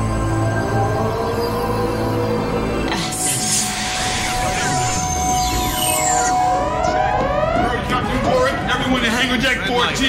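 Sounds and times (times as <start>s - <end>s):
steady electronic tones: 0.0s - 9.0s
rising alarm-like whoops: 0.1s - 8.7s.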